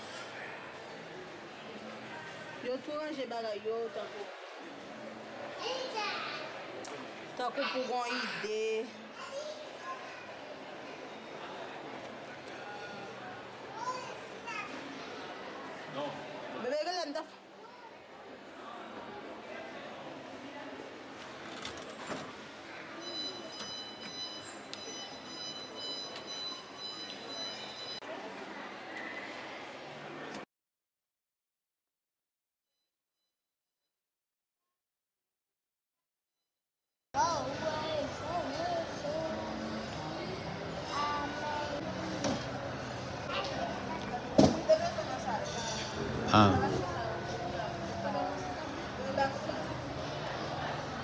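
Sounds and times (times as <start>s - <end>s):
murmur of voices: 0.0s - 24.1s, 37.2s - 51.0s
faint music: 37.2s - 51.0s.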